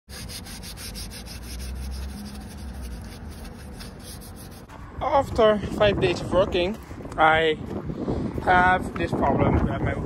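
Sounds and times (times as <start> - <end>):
paper towel rubbing on metal wheel: 0.1 - 4.7.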